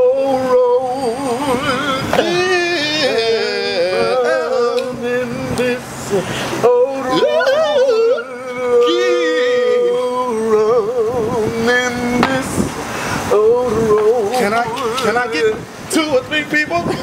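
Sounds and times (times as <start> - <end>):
men singing gospel vocal runs: 0.0 - 17.0.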